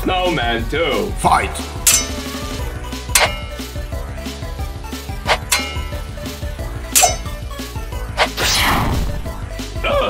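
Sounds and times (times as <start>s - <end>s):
background music: 0.0s - 10.0s
sharp metallic clashing hits: 1.8s - 3.9s, 5.3s - 7.4s.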